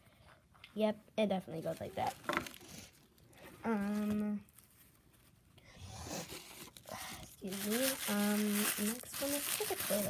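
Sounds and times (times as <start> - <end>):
paper packaging rustling: 1.5 - 5.4, 6.3 - 10.0.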